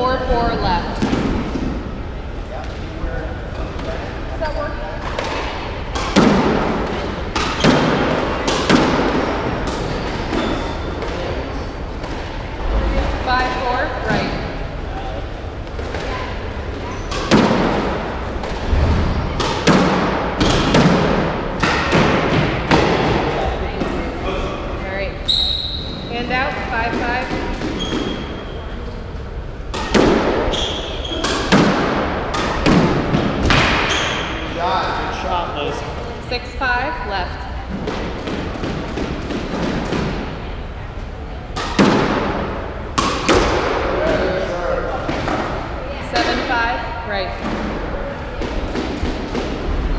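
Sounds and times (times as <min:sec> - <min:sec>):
squash ball hitting racquets and walls: 0:00.4 - 0:24.2, 0:25.3 - 0:35.0, 0:37.7 - 0:49.9.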